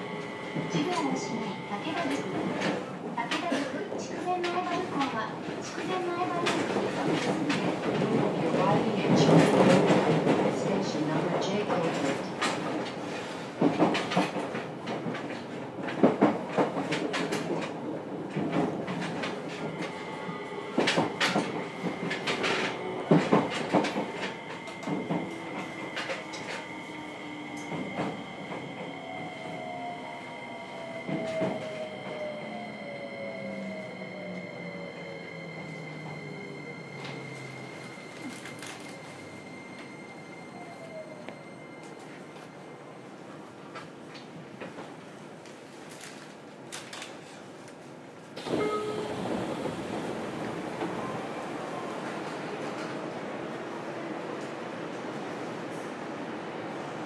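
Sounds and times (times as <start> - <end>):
train rolling noise: 0.0 - 57.0.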